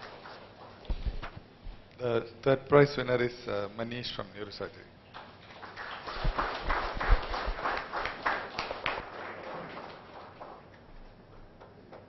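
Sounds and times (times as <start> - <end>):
audience clapping: 0.0 - 1.0, 5.1 - 11.0.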